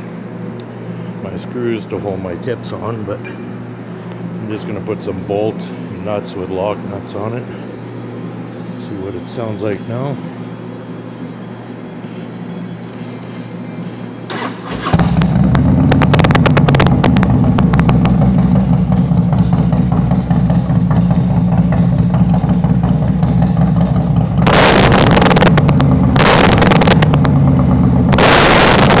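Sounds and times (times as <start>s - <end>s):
motorcycle engine revving: 14.3s - 29.0s
motorcycle engine running loud: 14.8s - 29.0s.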